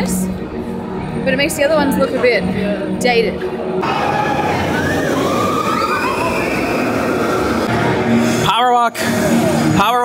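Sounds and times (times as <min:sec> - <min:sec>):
faint wavering whines: 0:03.4 - 0:08.1
roller coaster train rushing: 0:03.8 - 0:08.4.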